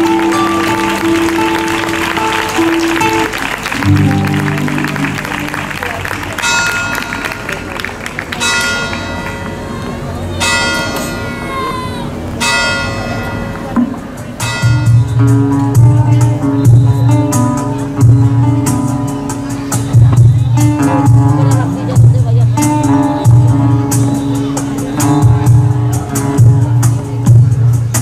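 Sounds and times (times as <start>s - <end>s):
music with long held notes: 0.0s - 7.6s, 13.5s - 28.0s
bells ringing: 0.0s - 16.8s.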